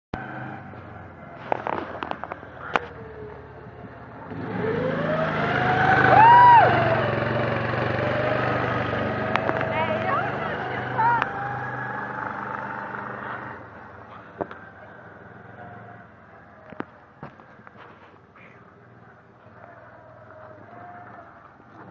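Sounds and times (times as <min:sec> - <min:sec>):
buggy engine revving: 0:00.2 - 0:21.9
people shouting whoops: 0:05.8 - 0:07.2.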